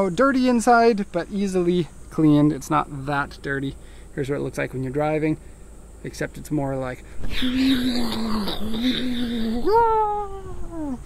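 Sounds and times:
man imitating car engine: 0:06.9 - 0:11.0.

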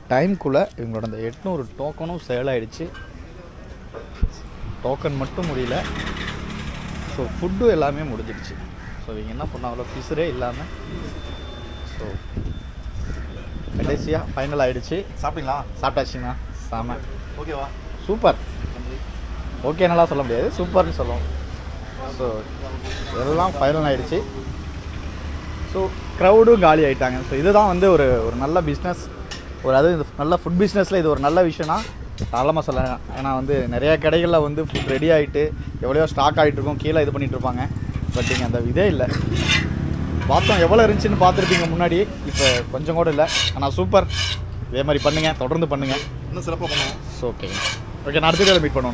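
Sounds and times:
road traffic engine rumble: 0:00.0 - 0:48.9
metal ladle scraping iron pan: 0:38.0 - 0:48.8.

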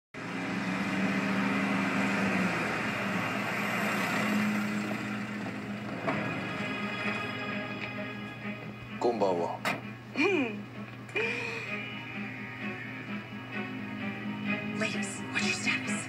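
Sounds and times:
vehicle engine running: 0:00.2 - 0:08.9
background music score: 0:00.2 - 0:16.0.

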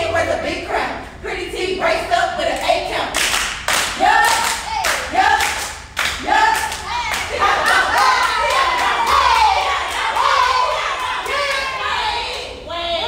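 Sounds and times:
people clapping: 0:03.2 - 0:12.6.

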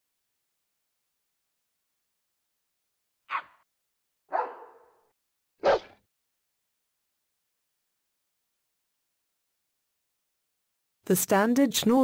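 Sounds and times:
dog barking: 0:03.3 - 0:03.6, 0:04.3 - 0:06.0.

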